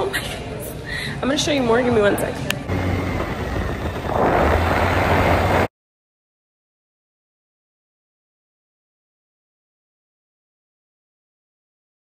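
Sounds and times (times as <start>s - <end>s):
moped engine humming: 2.5s - 5.7s
rushing noise: 2.7s - 5.7s.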